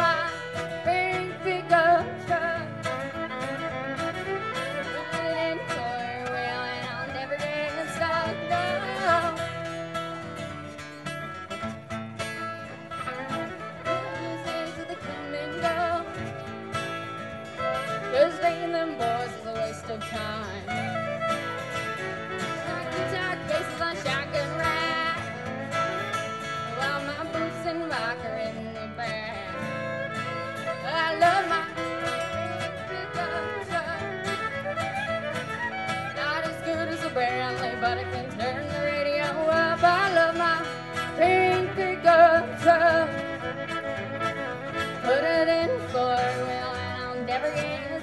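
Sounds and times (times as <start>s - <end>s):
fiddle melody: 0.0s - 48.0s
strummed acoustic guitars: 0.0s - 48.0s.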